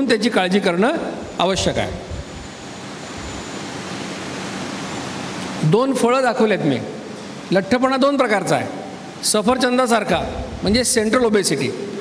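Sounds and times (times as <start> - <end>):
man speaking: 0.0 - 2.2, 7.5 - 11.9
room noise hiss: 0.0 - 12.0
faint low hum: 0.6 - 3.9.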